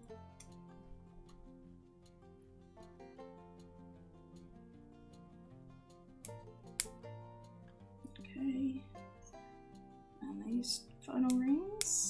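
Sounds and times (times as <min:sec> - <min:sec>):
quiet background music: 0:00.0 - 0:12.0
pliers clicking on metal rings: 0:05.9 - 0:07.0, 0:10.4 - 0:12.0.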